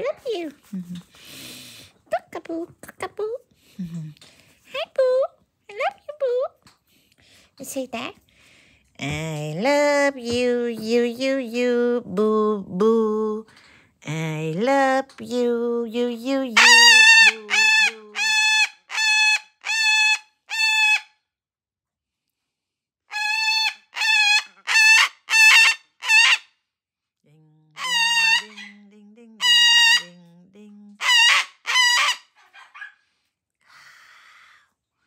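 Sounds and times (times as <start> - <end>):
cockatoo squawking: 16.6 - 21.1, 23.1 - 26.4, 27.8 - 28.8, 29.4 - 30.2, 31.0 - 33.0.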